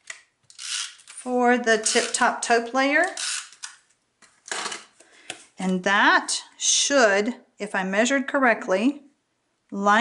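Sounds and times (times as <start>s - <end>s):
tape runner scratching: 0.5s - 2.4s, 3.0s - 3.8s.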